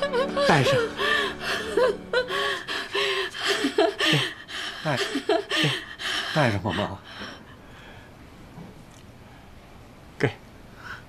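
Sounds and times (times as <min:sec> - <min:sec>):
woman sobbing: 0:00.0 - 0:07.6
gasping breaths: 0:00.9 - 0:08.2.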